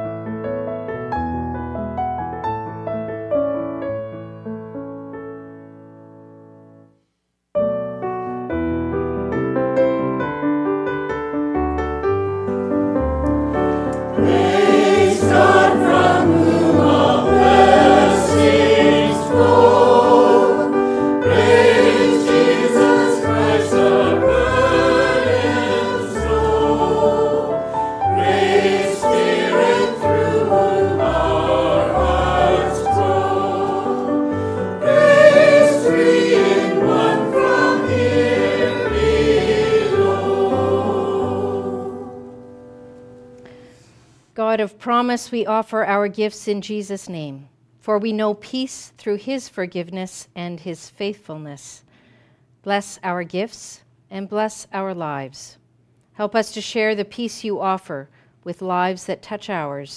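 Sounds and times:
keyboard accompaniment: 0.0s - 43.7s
choir singing: 14.0s - 42.5s.

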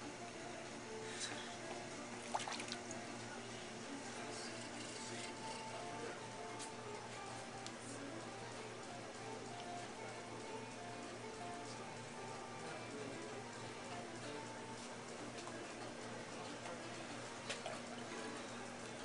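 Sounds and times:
potter's wheel humming: 0.0s - 19.0s
wet slurry dripping: 2.2s - 3.0s.

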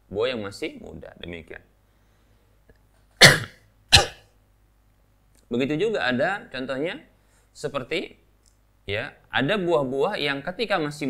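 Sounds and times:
man coughing: 3.2s - 4.3s.

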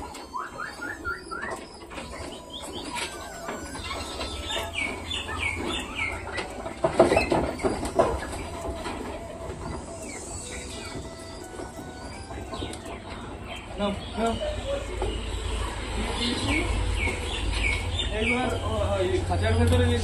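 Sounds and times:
louder low bird calls: 0.0s - 20.0s
small birds chirping: 0.0s - 20.0s.

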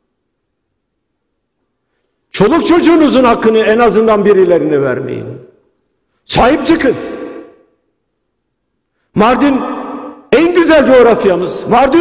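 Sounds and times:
man speaking in echoing hall: 1.3s - 12.0s.

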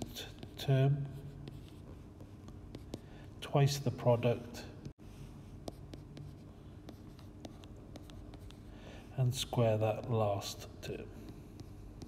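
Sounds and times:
stylus tapping and scratching on tablet: 0.0s - 8.7s, 9.4s - 12.0s.

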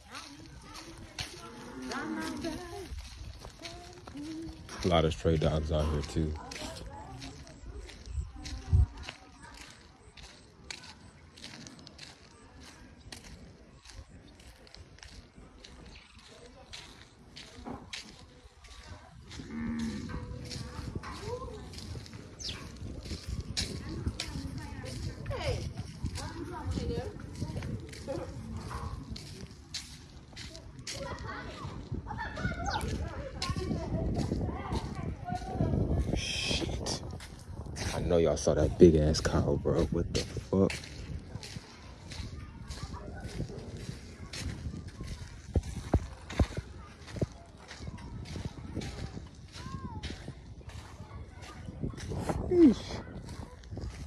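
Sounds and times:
footsteps on dirt road: 0.0s - 54.0s.

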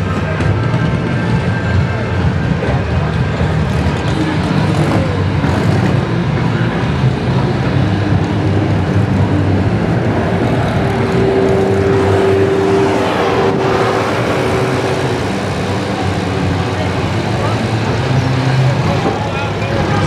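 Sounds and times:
steady whining tone: 0.0s - 20.0s
unmuffled car engines rumbling: 0.0s - 20.0s.

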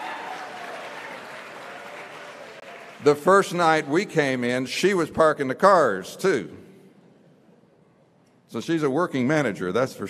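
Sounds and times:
audience applauding: 0.0s - 3.5s.

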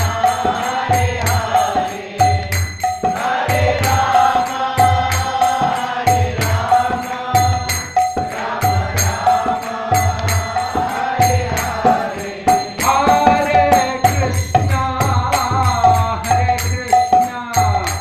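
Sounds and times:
man singing a chant: 0.0s - 18.0s
small hand cymbals struck: 0.0s - 18.0s.

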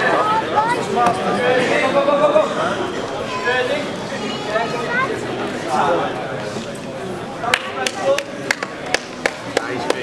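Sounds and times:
sharp hand claps: 7.5s - 10.0s.

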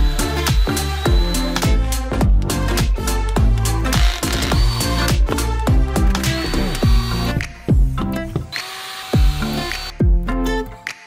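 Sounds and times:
cordless drill drilling into wall: 0.0s - 1.6s, 3.9s - 5.1s, 6.1s - 7.4s, 8.5s - 10.0s
music with a steady beat: 0.0s - 8.6s, 9.2s - 11.0s.

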